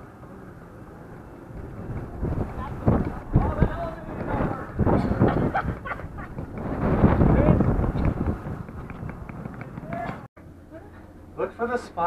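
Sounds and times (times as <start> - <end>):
wind buffeting microphone: 0.6 - 10.3
indistinct voices talking: 1.1 - 11.7.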